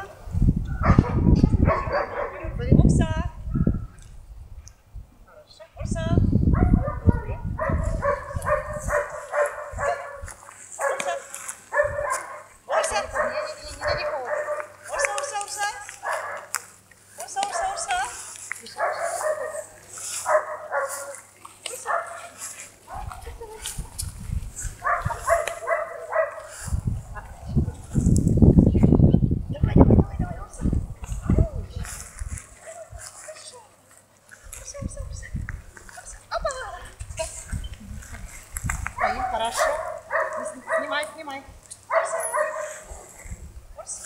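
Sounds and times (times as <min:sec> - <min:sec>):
dog barking: 0:00.7 - 0:02.6, 0:03.5 - 0:03.9, 0:06.5 - 0:15.3, 0:16.0 - 0:16.6, 0:18.8 - 0:21.2, 0:21.8 - 0:23.3, 0:24.8 - 0:26.5, 0:39.0 - 0:41.1, 0:41.9 - 0:43.2.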